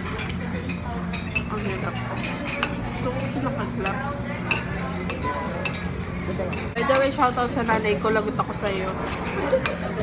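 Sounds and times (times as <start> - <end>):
cutlery clinking on plates: 0.0 - 2.9, 3.8 - 7.8, 9.0 - 10.0
dining room hum: 0.0 - 10.0.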